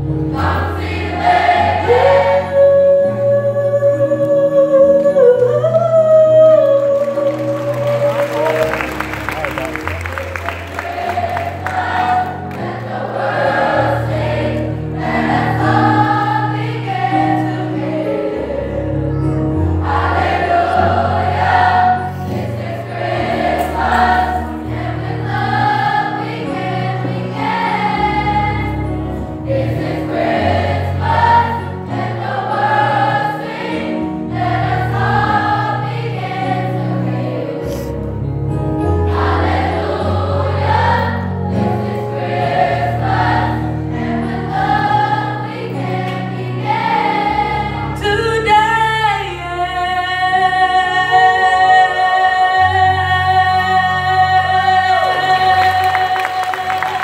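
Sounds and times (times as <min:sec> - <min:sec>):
youth choir singing: 0:00.0 - 0:38.0, 0:38.8 - 0:57.0.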